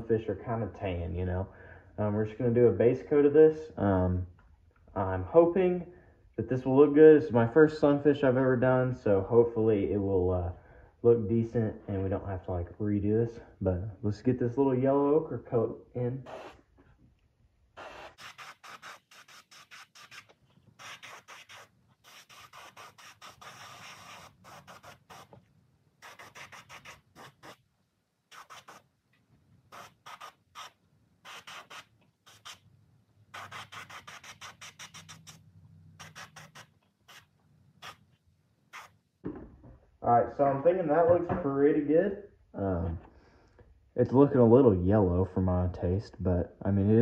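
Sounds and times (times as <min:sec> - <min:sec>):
airbrush spraying hiss: 0:17.8 - 0:25.4, 0:26.0 - 0:27.6, 0:28.3 - 0:28.8.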